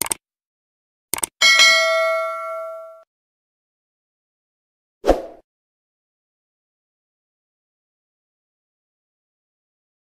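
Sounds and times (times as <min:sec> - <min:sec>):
clicks: 0:00.0 - 0:00.2, 0:01.1 - 0:01.3
notification bell ding: 0:01.4 - 0:03.0.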